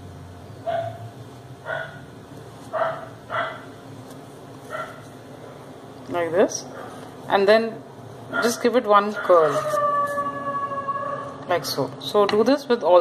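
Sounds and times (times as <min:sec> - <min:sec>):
dog barking: 0:00.6 - 0:02.0, 0:02.7 - 0:03.7, 0:04.7 - 0:05.0, 0:08.3 - 0:09.6.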